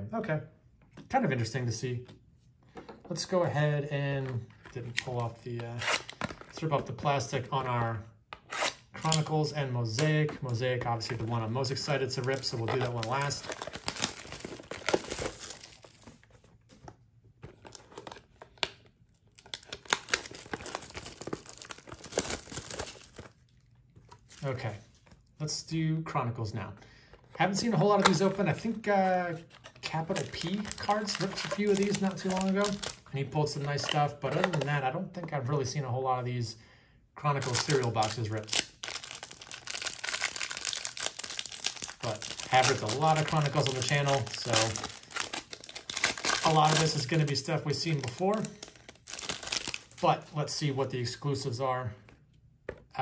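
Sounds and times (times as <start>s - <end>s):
plastic wrap crinkling and tearing: 11.0s - 16.5s, 17.5s - 24.7s, 27.7s - 34.7s, 37.4s - 50.1s.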